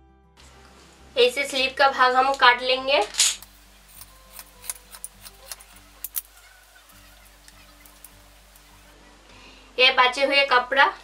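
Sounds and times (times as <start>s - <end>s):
shears snipping fabric: 3.2s - 6.4s.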